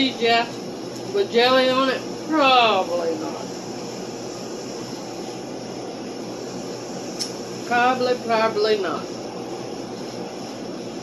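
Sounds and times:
ventilation hum: 0.0s - 11.0s.

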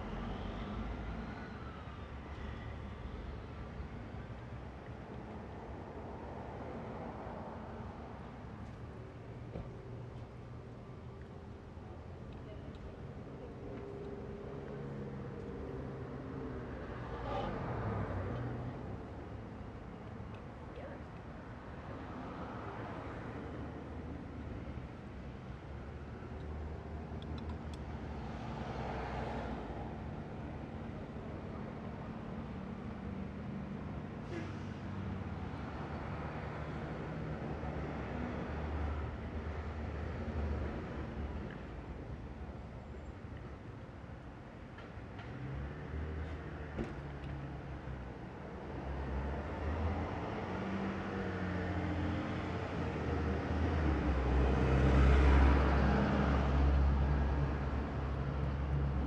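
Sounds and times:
cars passing with engine rumble: 0.0s - 59.0s.

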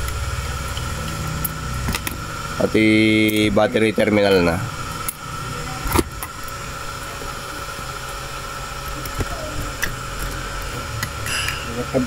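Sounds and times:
low rumble: 0.0s - 2.7s
faint steady whine: 0.0s - 12.0s.

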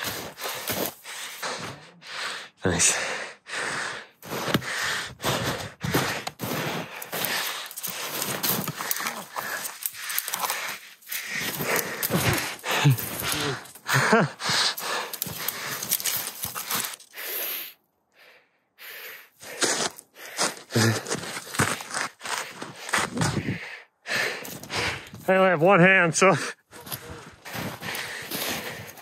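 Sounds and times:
footsteps: 0.0s - 1.8s, 4.2s - 13.8s, 19.4s - 23.4s
person breathing: 0.0s - 21.2s, 22.2s - 25.2s, 26.6s - 29.0s
person laughing: 12.7s - 14.5s.

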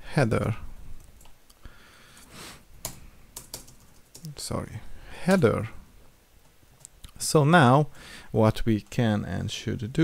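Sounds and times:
keystrokes on computer keyboard: 2.8s - 4.3s.

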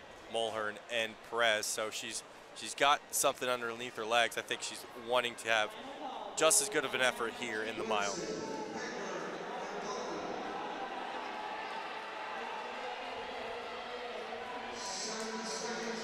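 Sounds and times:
faint indistinct voices: 0.0s - 16.0s
crowd murmur: 4.5s - 16.0s.

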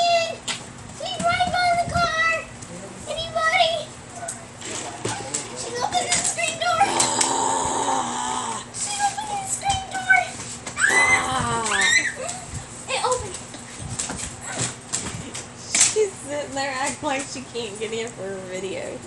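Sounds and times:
children talking and calling out: 0.0s - 13.5s.

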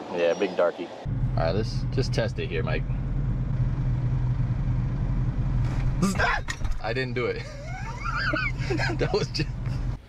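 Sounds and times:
vehicle engine idling: 1.0s - 10.0s.

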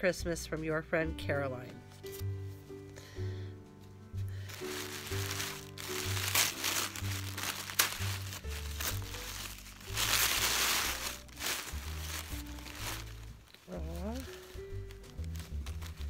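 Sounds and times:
background music: 0.0s - 16.0s
wrapping paper crinkling: 4.4s - 16.0s.

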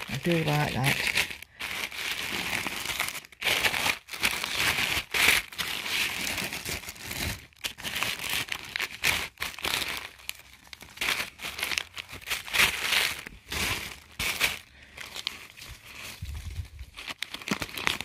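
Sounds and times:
tissue paper crinkling: 0.0s - 18.0s.

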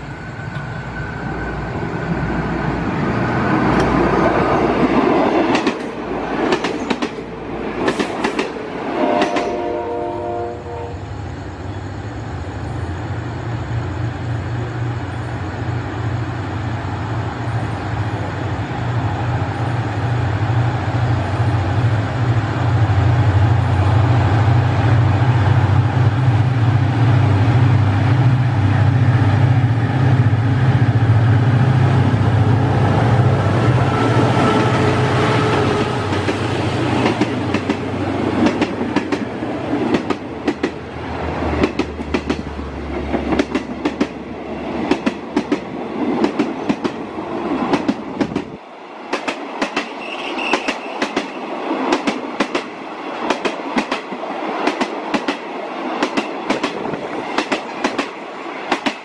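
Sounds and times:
diesel locomotive engine drone: 0.0s - 58.9s
train wheels clickety-clack: 3.5s - 9.7s, 34.4s - 40.8s, 41.4s - 59.0s.

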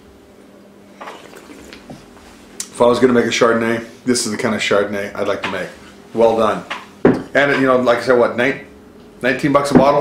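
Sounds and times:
faint room hum: 0.0s - 10.0s
man slurping wine: 1.0s - 2.1s.

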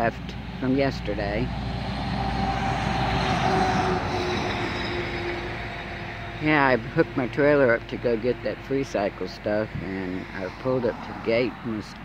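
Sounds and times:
motor vehicle passing: 0.0s - 12.0s.

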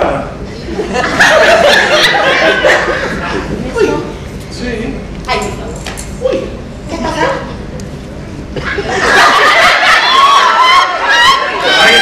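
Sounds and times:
theatre hall room noise: 7.4s - 12.0s
louder voices: 9.3s - 12.0s.

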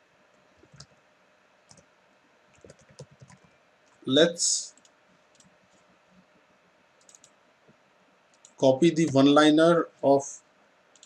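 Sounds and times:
computer keyboard keystrokes: 2.5s - 3.5s, 7.0s - 7.4s.

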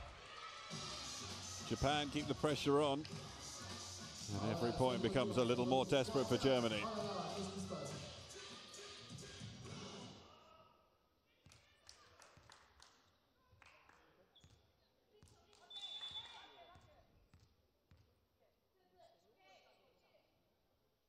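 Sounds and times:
short referee's whistle: 15.7s - 16.5s.

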